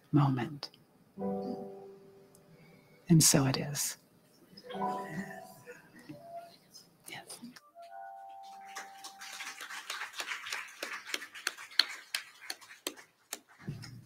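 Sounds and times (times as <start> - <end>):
people clapping: 7.8 - 14.0.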